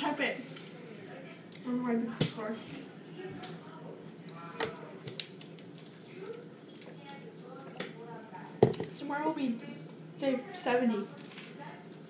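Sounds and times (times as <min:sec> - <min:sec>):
faint murmured voices: 0:00.0 - 0:12.0
plastic bottle knocking on table: 0:08.6 - 0:08.9.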